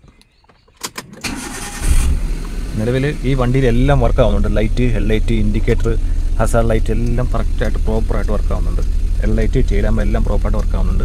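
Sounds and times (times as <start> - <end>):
car engine cranking and starting: 0.8 - 11.0.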